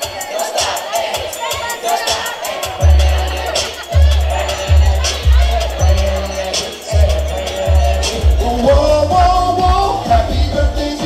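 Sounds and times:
dance music with steady beat: 0.0 - 11.0
girls shouting and singing: 0.0 - 11.0.

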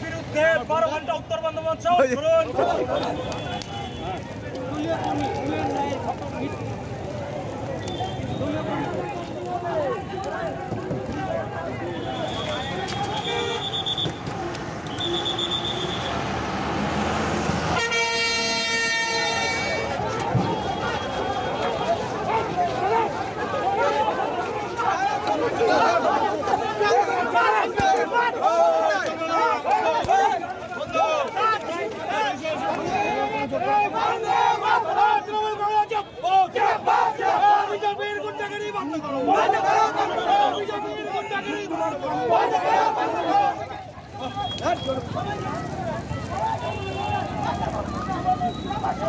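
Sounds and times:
crowd chatter: 0.0 - 49.0
traffic noise: 0.0 - 49.0
vehicle horns: 2.8 - 5.0, 11.8 - 16.4, 17.7 - 22.6, 46.5 - 49.0.

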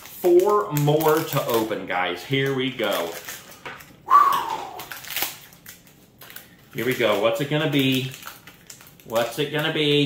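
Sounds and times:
foil crinkling and rustling: 0.0 - 4.0, 4.7 - 10.0
scissors snipping foil: 4.8 - 9.7.

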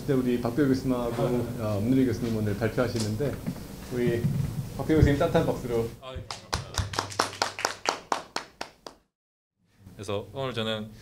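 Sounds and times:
people applauding: 6.2 - 9.1.

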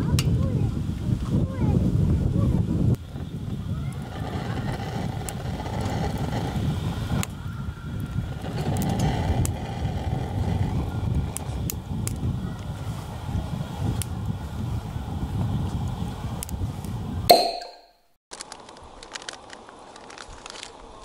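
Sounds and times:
wind rumble on microphone: 0.0 - 17.3.

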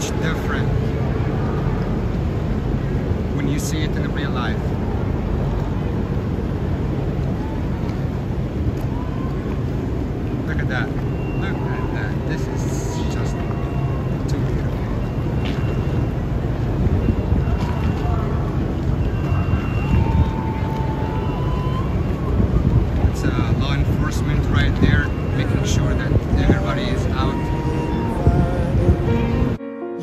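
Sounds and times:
boat engine humming: 0.0 - 29.6
distant crowd voices: 0.0 - 29.6
wind: 0.0 - 30.0.

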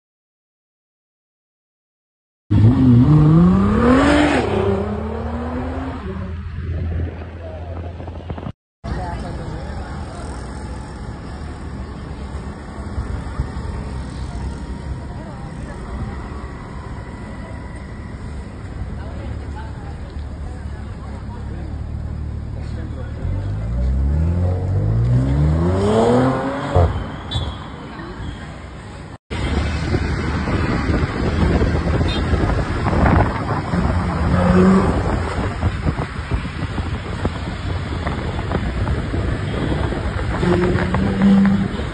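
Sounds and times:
road traffic: 2.5 - 41.9
car engine rumbling at low speed: 6.2 - 25.4, 27.9 - 41.9
people talking: 7.2 - 12.8, 13.7 - 24.5, 39.1 - 41.9
wind buffeting microphone: 29.5 - 41.9.

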